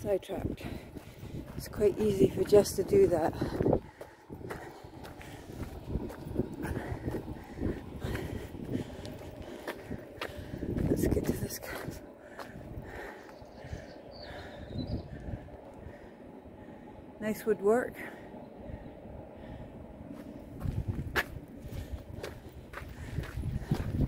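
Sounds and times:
footsteps on gravel: 0.4 - 13.1, 20.2 - 24.0.

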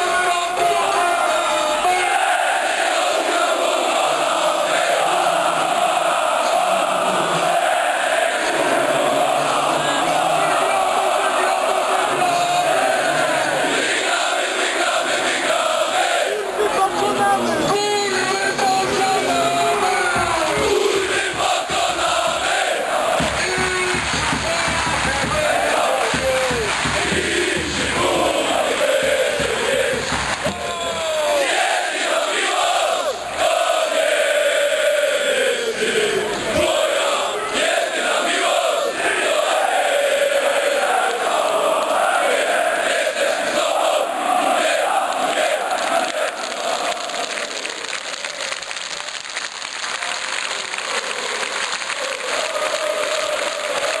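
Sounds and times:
crowd chanting: 0.0 - 48.6, 50.0 - 54.0.

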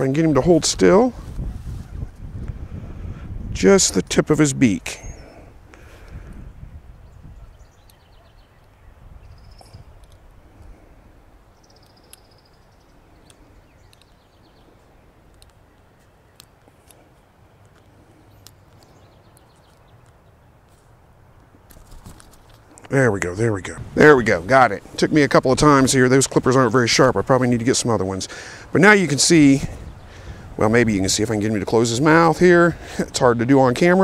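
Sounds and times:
faint bird chirps: 7.0 - 16.6.

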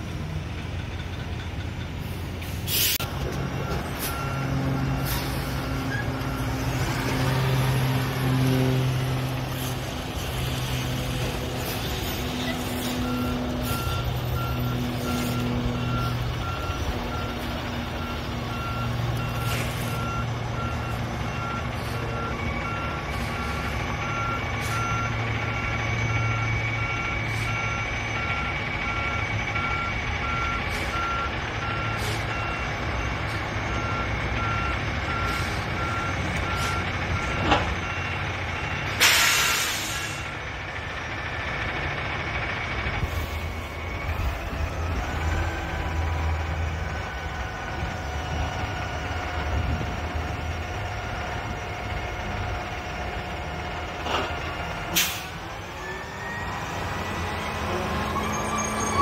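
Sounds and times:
diesel truck engine: 0.0 - 59.0.

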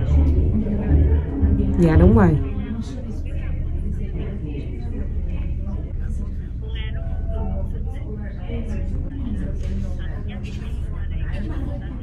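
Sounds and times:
steady low rumble: 0.0 - 4.0
faint voices: 0.0 - 12.0.

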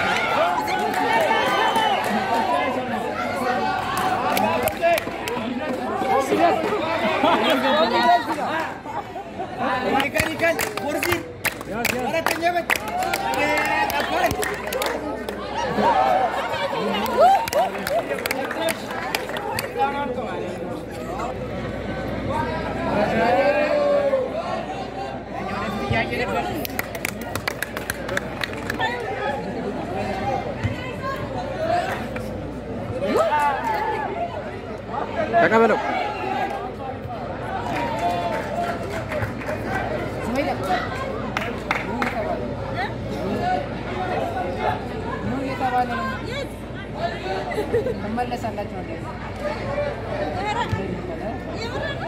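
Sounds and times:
spectators talking and calling out: 0.0 - 52.0.

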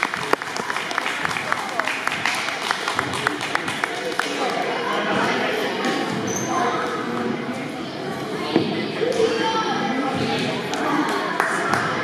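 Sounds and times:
crowd chatter in gymnasium: 0.0 - 12.0.

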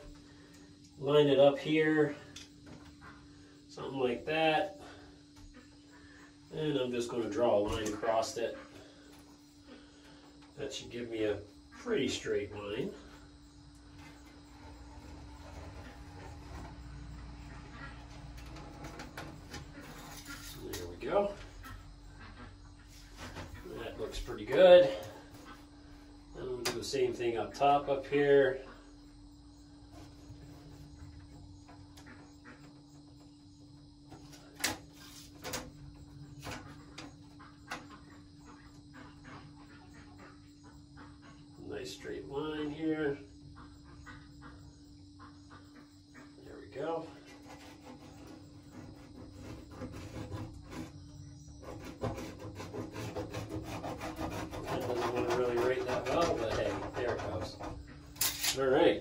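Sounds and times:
pencil scratching on wood: 47.3 - 57.5.

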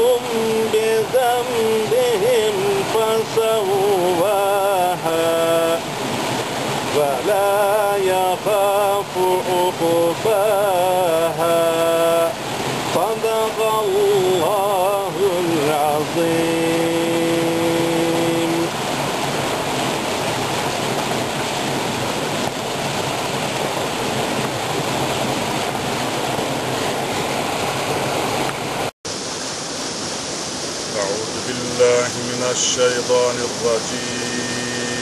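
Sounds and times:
man reciting: 0.0 - 5.8, 6.9 - 18.7, 31.0 - 35.0
waterfall splashing into pool: 0.0 - 35.0.

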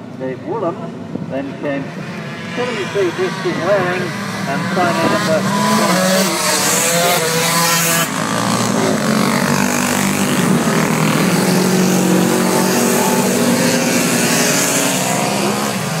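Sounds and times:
racing motorcycles passing: 0.2 - 16.0.

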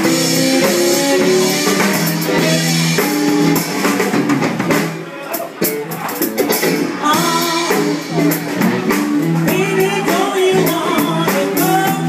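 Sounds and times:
electric bass: 0.0 - 5.0, 5.6 - 12.0
drum kit: 0.0 - 12.0
electric guitar: 0.0 - 12.0
woman singing into microphone: 7.0 - 7.9, 9.5 - 12.0.

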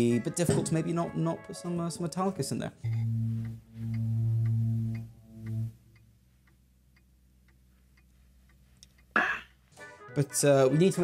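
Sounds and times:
low held musical notes: 0.0 - 8.8
faint regular ticking: 2.2 - 9.7.

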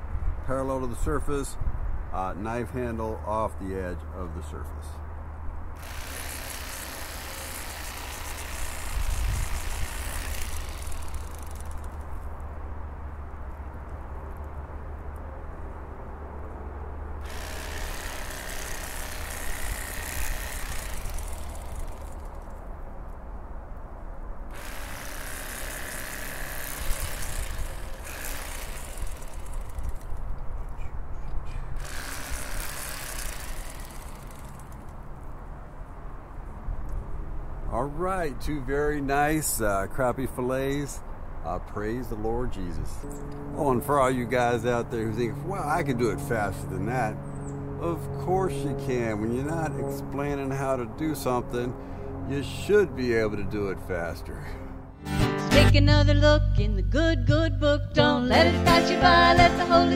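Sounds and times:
electric fillet knife buzzing: 5.8 - 11.9, 17.2 - 22.5, 24.5 - 30.2, 31.8 - 34.9.

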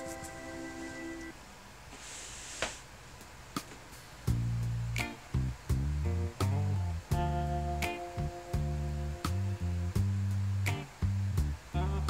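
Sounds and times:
background music chord: 0.0 - 1.4, 4.3 - 12.0
soft hiss: 0.0 - 12.0.

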